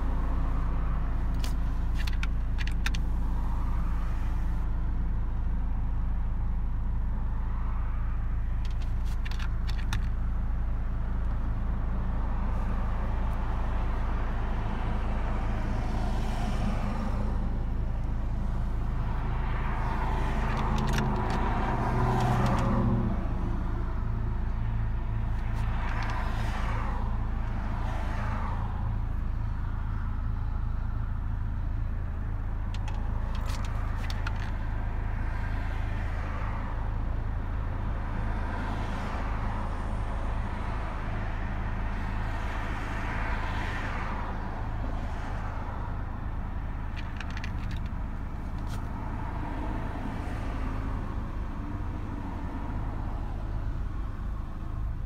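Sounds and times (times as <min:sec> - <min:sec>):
car engine and road rumble: 0:00.0 - 0:55.0.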